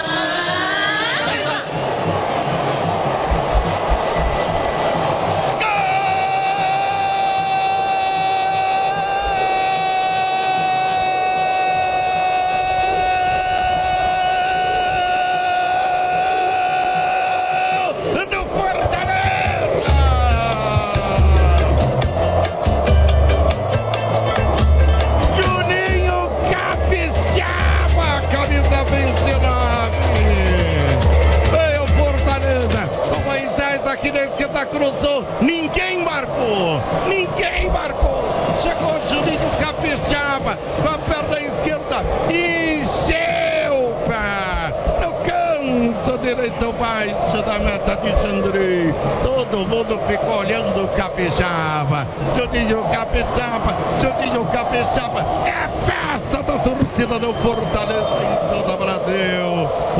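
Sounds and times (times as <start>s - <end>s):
voices over music: 0.0s - 3.1s, 4.9s - 22.1s, 24.2s - 59.9s
jingle with pounding bass beat: 19.9s - 33.3s.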